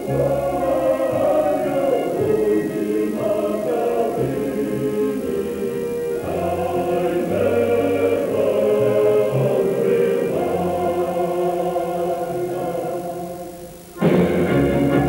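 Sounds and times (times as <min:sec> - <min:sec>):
choir singing slow chords: 0:00.0 - 0:15.0.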